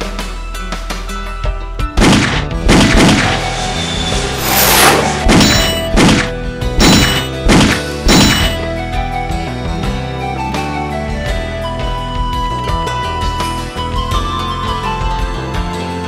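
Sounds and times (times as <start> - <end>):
background music: 0.0 - 16.0
handgun shots: 2.0 - 3.4, 5.3 - 8.6
bullet whooshing by: 2.0 - 8.6.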